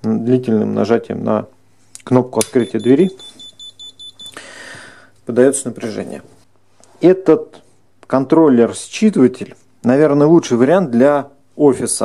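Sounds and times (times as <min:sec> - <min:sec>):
short high buzzer beeps: 0:02.6 - 0:04.4.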